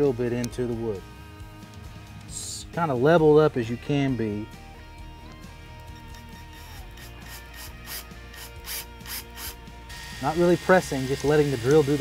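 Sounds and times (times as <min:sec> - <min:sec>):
cordless drill motor whine: 0:06.6 - 0:12.0.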